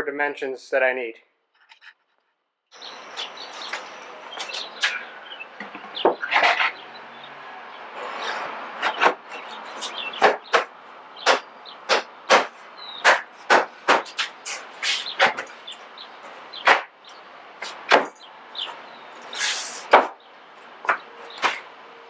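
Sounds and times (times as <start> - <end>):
wooden knocks and clattering: 5.6 - 6.8.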